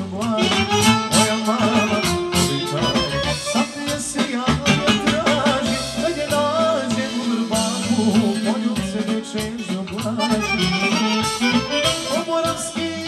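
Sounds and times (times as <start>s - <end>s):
saxophone melody: 0.0s - 7.2s, 9.9s - 13.0s
accordion: 0.0s - 13.0s
drum kit beat: 0.0s - 13.0s
man singing: 0.0s - 13.0s.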